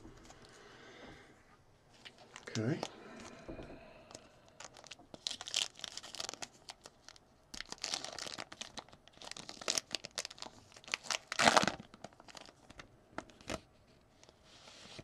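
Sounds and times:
foil wrapper rustling: 0:04.6 - 0:12.8
foil wrapper tearing and crinkling: 0:04.6 - 0:13.6.

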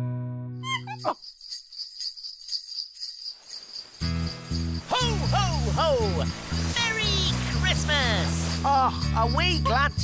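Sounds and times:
sleigh bells jingling: 0:00.6 - 0:10.0.

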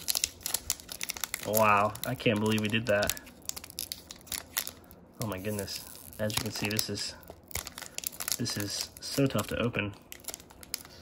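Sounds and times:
foil wrapper crinkling and tearing: 0:00.0 - 0:11.0.

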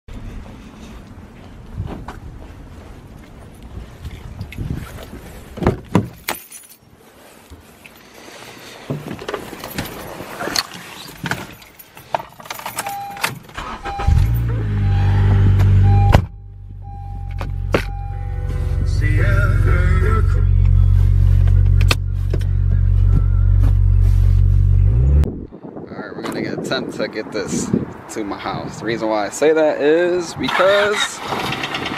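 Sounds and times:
keys jangling: 0:11.1 - 0:13.5
car warning chime beeping: 0:12.8 - 0:19.6.

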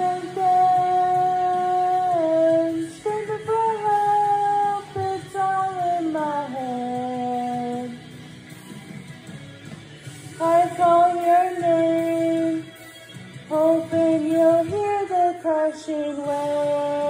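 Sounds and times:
person singing long held notes: 0:00.0 - 0:08.0, 0:13.5 - 0:17.0
karaoke backing track: 0:00.0 - 0:17.0.

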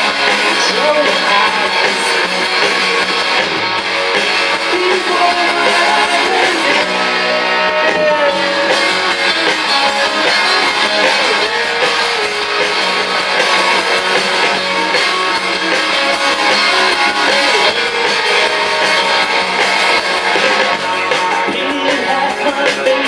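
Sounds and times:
bass: 0:00.0 - 0:23.0
drum kit: 0:00.0 - 0:23.0
electric guitars: 0:00.0 - 0:23.0.

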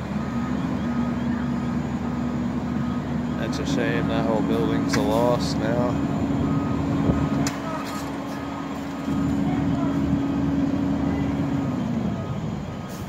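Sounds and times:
diesel engine running: 0:00.0 - 0:13.0
faint voices: 0:07.3 - 0:12.6.

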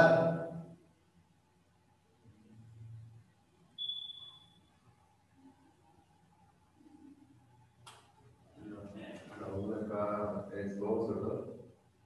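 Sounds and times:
faint low rumble: 0:02.2 - 0:03.4.

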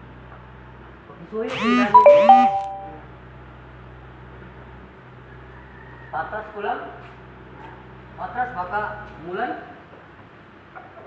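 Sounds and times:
two-note electronic chime: 0:01.7 - 0:03.0.

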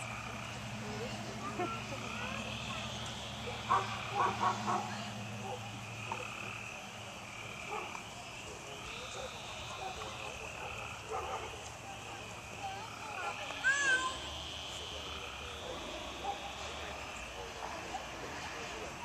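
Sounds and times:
frogs calling: 0:00.0 - 0:19.0.

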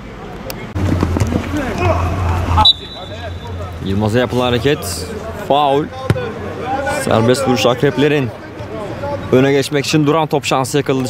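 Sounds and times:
players calling out: 0:00.6 - 0:09.4
referee whistle blown: 0:02.6 - 0:03.6.

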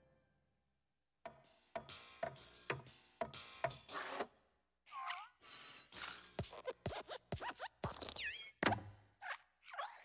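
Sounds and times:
springy clicks with squeaks: 0:05.4 - 0:06.3
squeaky metal joints creaking: 0:05.4 - 0:06.6.

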